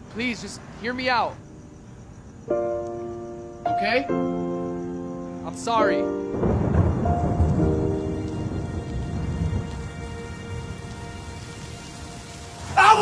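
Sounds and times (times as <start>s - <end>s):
rain falling: 5.9s - 13.0s
thunder rumble: 5.9s - 13.0s.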